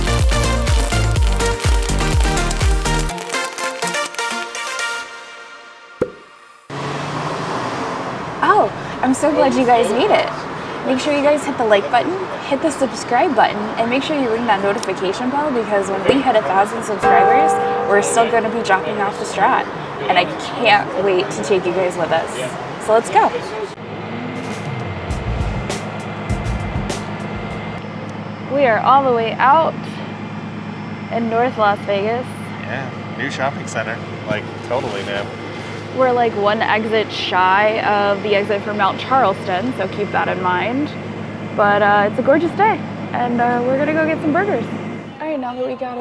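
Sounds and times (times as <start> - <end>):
music: 0.0 - 6.6, 25.1 - 27.8
low hum: 17.0 - 20.0
street traffic hiss: 25.7 - 45.1.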